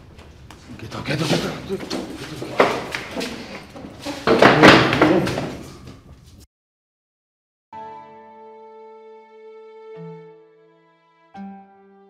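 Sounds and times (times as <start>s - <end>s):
heavy door slamming: 1.8s - 5.8s.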